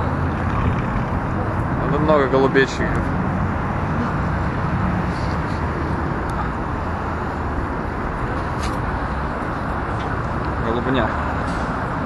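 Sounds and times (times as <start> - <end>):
cars passing on street: 0.0 - 12.0.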